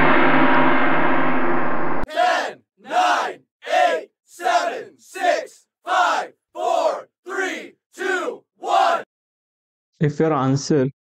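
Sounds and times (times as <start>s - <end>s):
voices chanting shouts: 2.1s - 9.1s.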